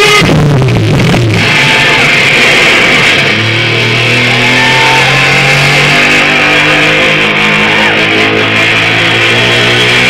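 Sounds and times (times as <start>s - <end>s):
electric guitar: 0.0s - 10.0s
stage noise: 0.0s - 10.0s.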